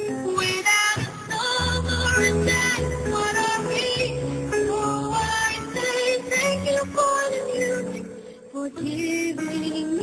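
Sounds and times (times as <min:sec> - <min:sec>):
song with sung melody: 0:00.0 - 0:10.0.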